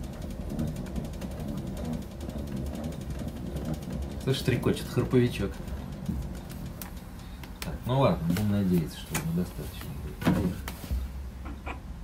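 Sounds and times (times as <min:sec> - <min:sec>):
winding ratchet chattering: 0:00.0 - 0:07.4.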